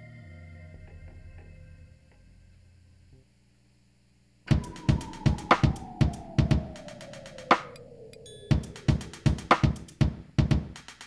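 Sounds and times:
heavy drum beat: 0:04.5 - 0:07.7, 0:08.5 - 0:11.0
synth tone sliding down: 0:04.5 - 0:10.0.

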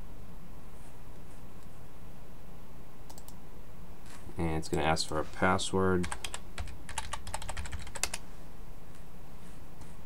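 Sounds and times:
low steady hum: 0:00.0 - 0:10.0
typing on computer keyboard: 0:06.0 - 0:08.2.

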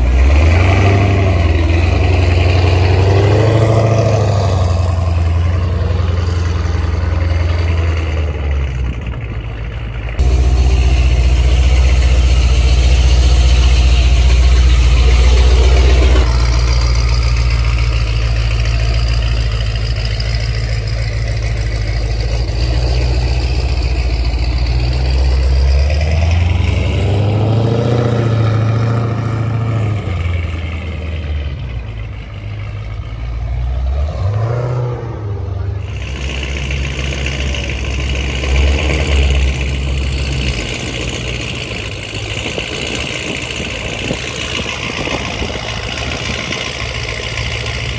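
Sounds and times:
car engine exhaust rumble: 0:00.0 - 0:47.9.

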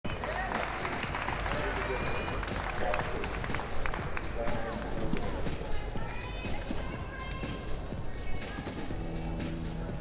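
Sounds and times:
background music: 0:00.1 - 0:10.0.

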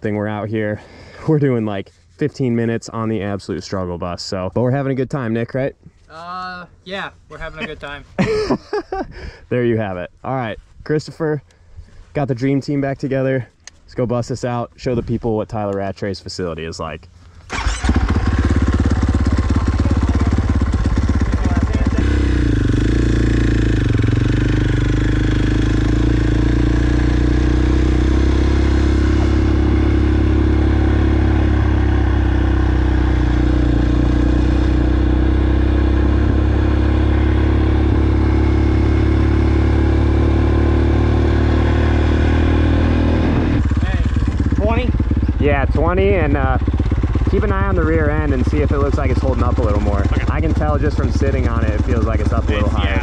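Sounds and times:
motocross bike engine running: 0:17.6 - 0:53.0.

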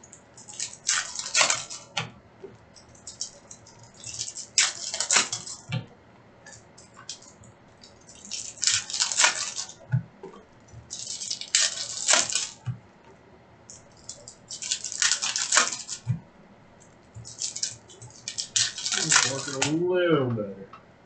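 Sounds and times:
foil wrappers crinkling and tearing: 0:00.3 - 0:02.0, 0:02.9 - 0:05.7, 0:06.8 - 0:09.9, 0:10.9 - 0:12.6, 0:13.7 - 0:16.1, 0:17.2 - 0:19.8
quiet handling of packs: 0:09.3 - 0:20.4.

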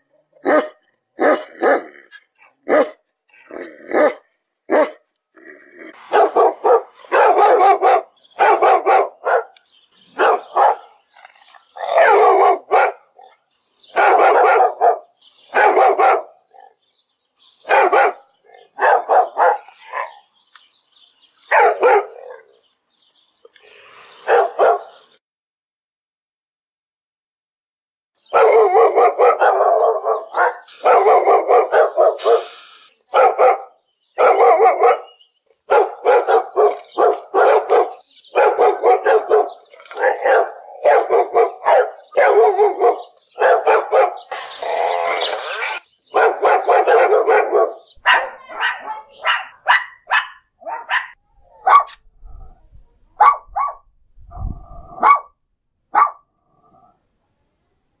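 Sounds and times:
dog barking: 0:00.4 - 0:02.0, 0:02.6 - 0:05.0, 0:06.0 - 0:11.0, 0:11.8 - 0:13.3, 0:13.9 - 0:16.7, 0:17.6 - 0:20.2, 0:21.5 - 0:22.6, 0:24.2 - 0:25.1, 0:28.3 - 0:44.4, 0:46.1 - 0:52.0, 0:53.2 - 0:56.3.

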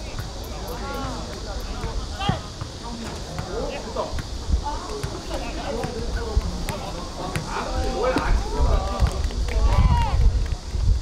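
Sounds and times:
wind on microphone: 0:03.9 - 0:11.0.

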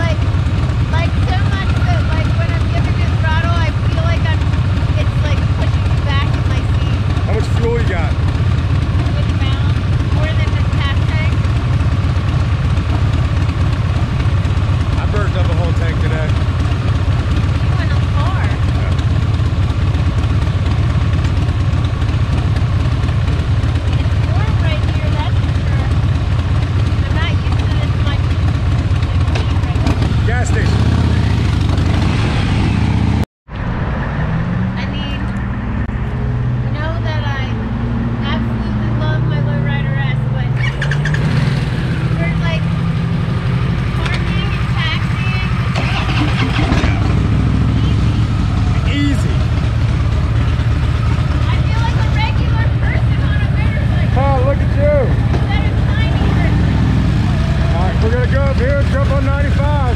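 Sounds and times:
motorcycle engines idling: 0:00.0 - 0:33.2, 0:34.6 - 0:59.9
road traffic: 0:00.0 - 0:59.9.

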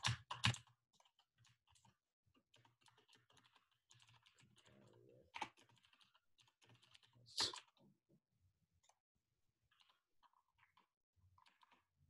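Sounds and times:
typing on computer keyboard: 0:00.0 - 0:07.7.

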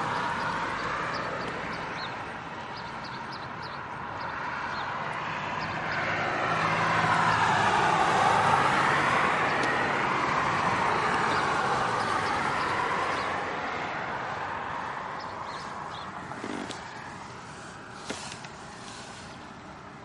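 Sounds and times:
vehicle passing by: 0:00.0 - 0:19.6.

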